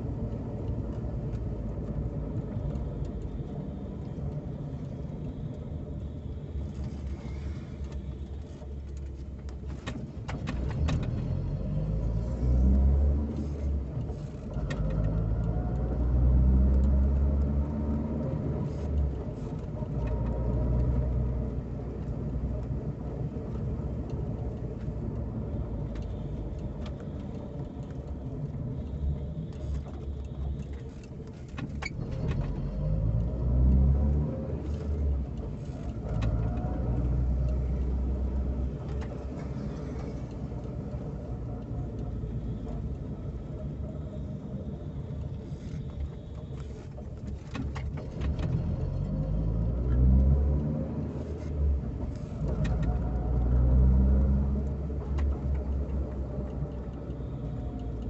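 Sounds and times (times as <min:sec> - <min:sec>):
car engine: 0:00.0 - 0:58.0
road noise: 0:00.0 - 0:58.0.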